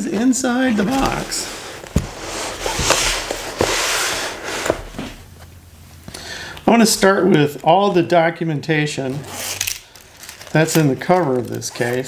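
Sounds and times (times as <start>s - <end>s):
rustling and handling of case: 0.1s - 5.6s, 9.1s - 12.0s.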